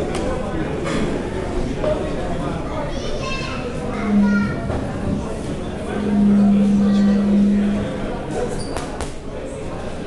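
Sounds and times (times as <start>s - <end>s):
chatter of many voices: 0.0s - 10.0s
low hum: 3.8s - 8.2s.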